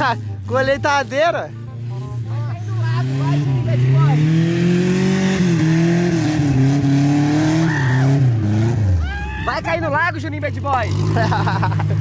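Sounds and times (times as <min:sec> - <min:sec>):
car engine revving hard: 0:01.8 - 0:09.0, 0:10.8 - 0:11.8.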